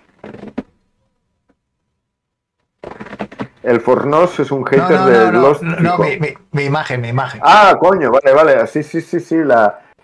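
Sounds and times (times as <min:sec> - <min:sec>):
man's voice murmuring: 0:04.7 - 0:06.5.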